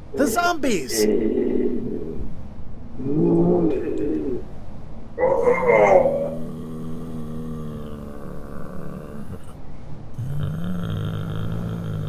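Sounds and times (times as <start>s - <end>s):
zombie groaning voices: 0.8s - 2.3s, 5.2s - 9.6s, 10.2s - 12.0s.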